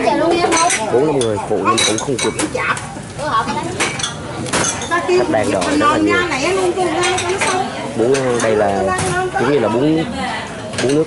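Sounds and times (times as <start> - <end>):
tableware clinking: 0.2 - 2.6, 3.4 - 9.3, 10.6 - 11.0.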